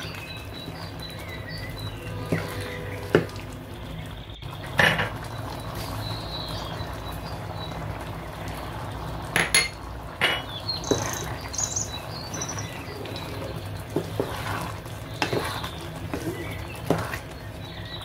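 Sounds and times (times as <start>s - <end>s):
spatula stirring: 0.0s - 3.5s, 10.7s - 18.0s
curry simmering and bubbling: 0.0s - 18.0s.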